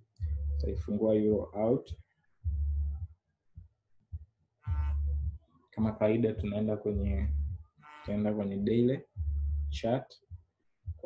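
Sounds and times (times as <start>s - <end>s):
faint low bumps: 0.0s - 3.1s, 4.1s - 11.0s
man's drawn-out hesitation sound: 5.8s - 7.3s, 8.1s - 9.0s.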